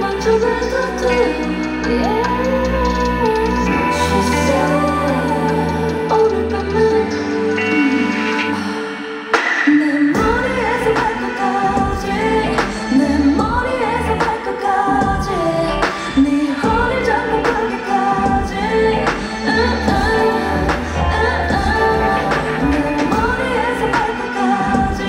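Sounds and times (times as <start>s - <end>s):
pop backing track with bass and drums: 0.0s - 8.6s, 10.2s - 25.0s
woman singing into microphone: 0.0s - 25.0s.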